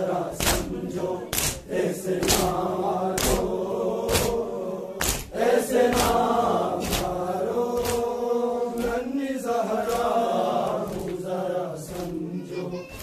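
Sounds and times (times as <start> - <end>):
crowd of men chanting: 0.0 - 13.0
hands slapping chests: 0.3 - 12.2.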